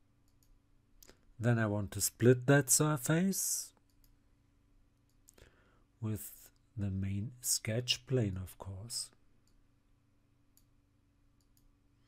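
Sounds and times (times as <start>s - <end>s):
faint steady hum: 0.0s - 12.0s
computer mouse click: 0.2s - 1.2s, 11.4s - 11.7s.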